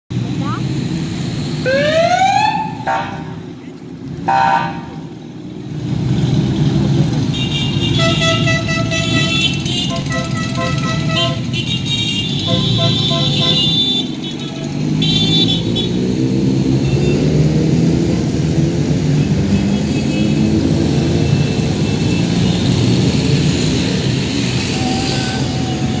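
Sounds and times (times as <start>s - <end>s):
motorcycle engines rumbling: 0.1s - 26.0s
police siren chirping and whooping: 1.6s - 3.0s
horn toot: 7.3s - 16.0s.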